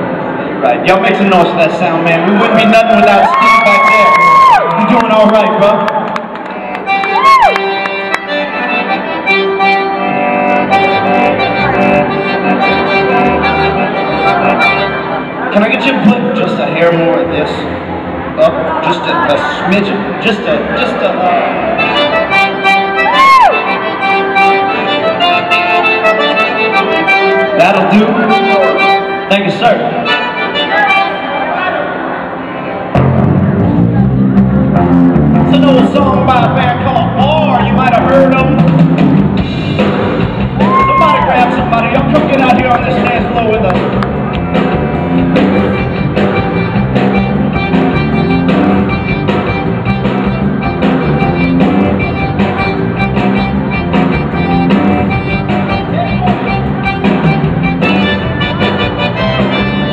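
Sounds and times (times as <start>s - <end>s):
accordion playing chords: 4.8s - 59.9s
low bass notes pulsing: 10.1s - 18.6s, 32.9s - 59.9s.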